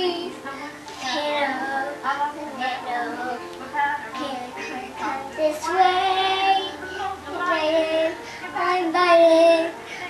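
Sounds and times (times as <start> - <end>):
child singing: 0.0 - 10.0
song music from television: 0.0 - 10.0.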